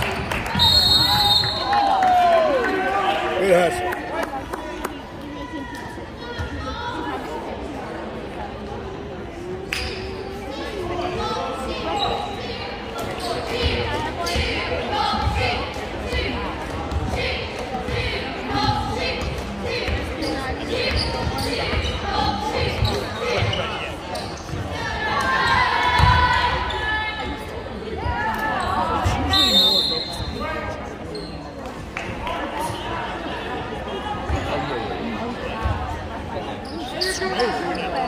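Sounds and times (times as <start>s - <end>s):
spectator chatter: 0.0s - 38.0s
shoe squeak: 20.2s - 24.6s, 31.1s - 31.6s, 36.4s - 38.0s.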